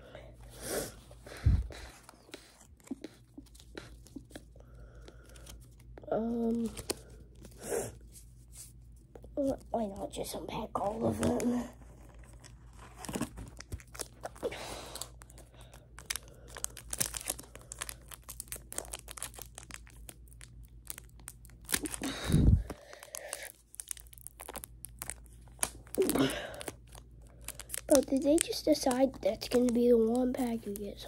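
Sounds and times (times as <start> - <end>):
wrappers tearing and crinkling: 11.2 - 31.0.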